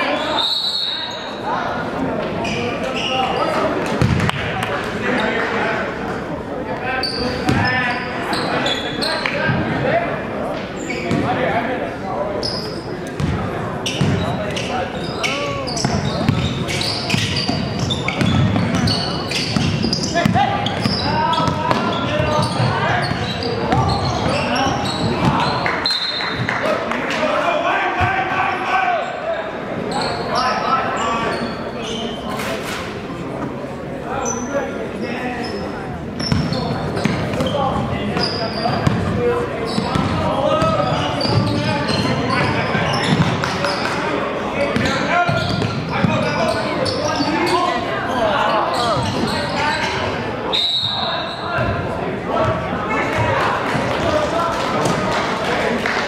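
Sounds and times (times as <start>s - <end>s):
sneaker squeaks: 0.0s - 1.6s, 2.3s - 4.4s, 6.8s - 9.6s, 10.5s - 11.4s, 12.3s - 26.6s, 29.9s - 33.0s, 34.2s - 53.4s
crowd and players chattering: 0.0s - 56.0s
basketball bouncing on hardwood: 4.0s - 4.3s.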